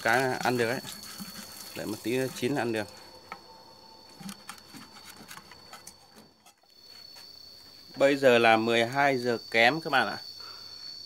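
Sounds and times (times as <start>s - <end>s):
spatula scraping frying pan: 0.0s - 2.5s
high-pitched insect whine: 0.0s - 11.0s.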